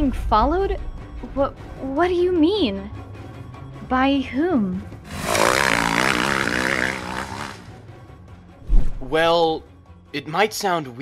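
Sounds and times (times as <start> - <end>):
motorcycle engine running: 5.1 - 7.7.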